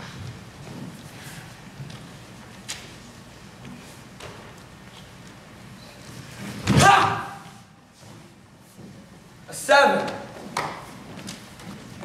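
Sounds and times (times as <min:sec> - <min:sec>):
person shouting: 0:06.7 - 0:07.6.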